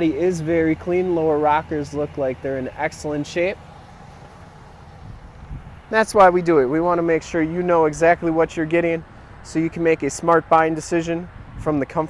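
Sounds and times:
man's voice: 0.0 - 3.6, 5.9 - 12.0.

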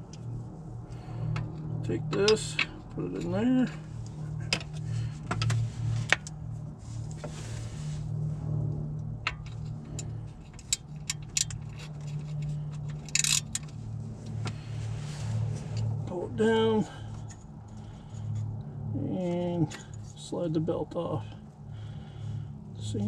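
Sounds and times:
steady low hum: 0.0 - 23.0
ratchet metallic clicks: 9.3 - 13.7.

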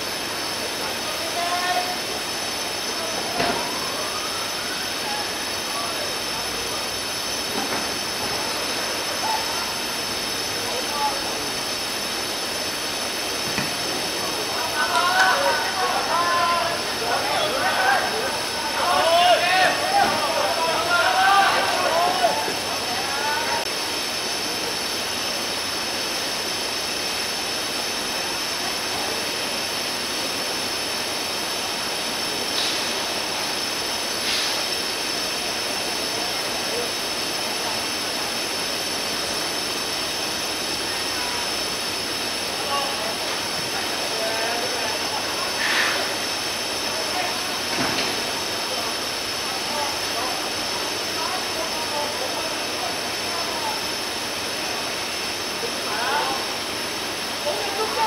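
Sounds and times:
loud steady hiss: 0.0 - 58.0
distant players shouting: 14.6 - 23.6.

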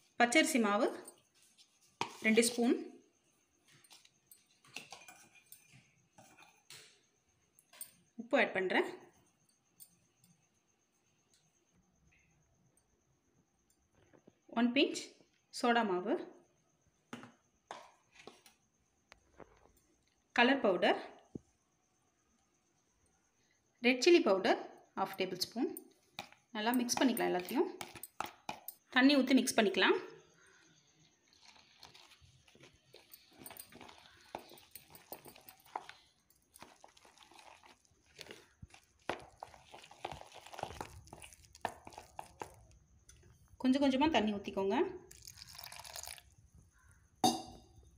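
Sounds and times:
spoon scraping batter: 0.9 - 2.8, 3.6 - 7.1, 26.0 - 28.7, 30.8 - 43.6.

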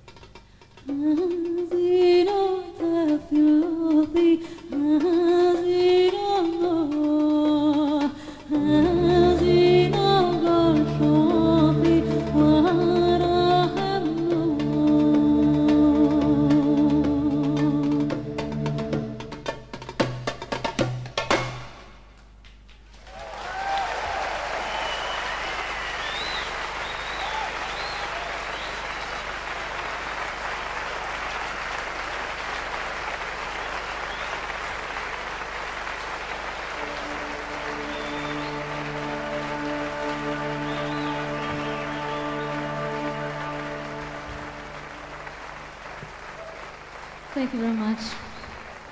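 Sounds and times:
band holding a chord: 8.5 - 20.0, 36.7 - 46.3
audience applauding and cheering: 22.7 - 48.9
whistles: 23.4 - 29.4, 34.0 - 34.6, 36.8 - 43.6.

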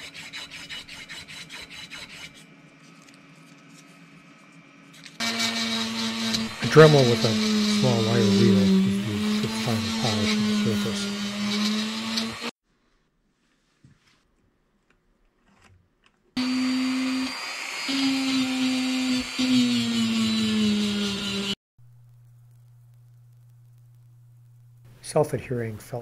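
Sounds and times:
rotary tool wire brushing metal: 5.2 - 12.5.

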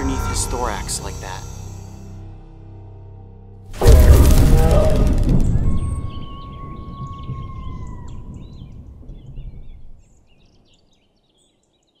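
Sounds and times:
steady whistled tone: 4.5 - 8.8
birds chirping: 4.5 - 12.0.

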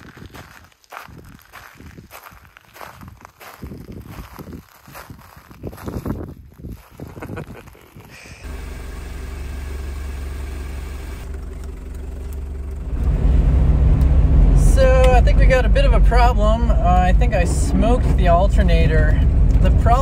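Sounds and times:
footsteps on gravel: 0.0 - 8.4
van engine hum: 8.2 - 20.0.

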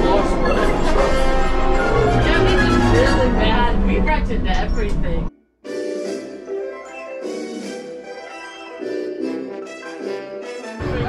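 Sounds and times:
deep rumble with gliding effects: 0.0 - 5.3.

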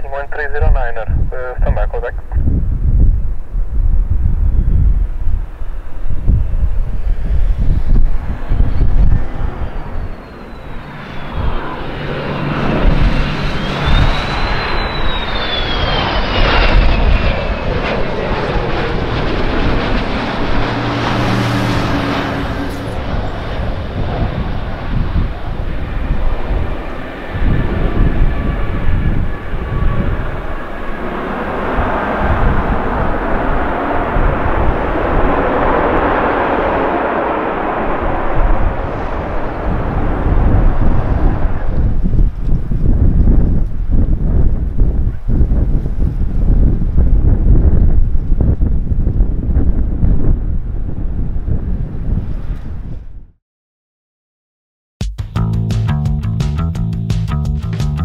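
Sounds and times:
jet engine whine: 0.0 - 53.1
low rumble: 0.0 - 53.4.

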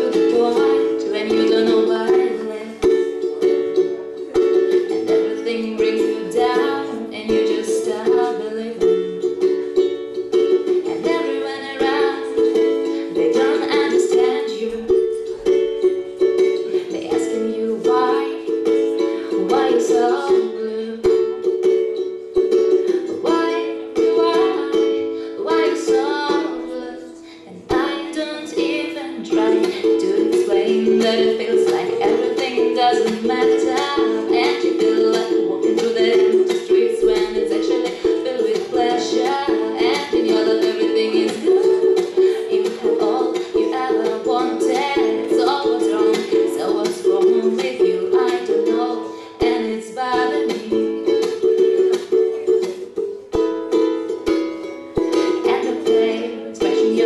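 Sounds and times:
ukulele strumming chords: 0.0 - 57.0.

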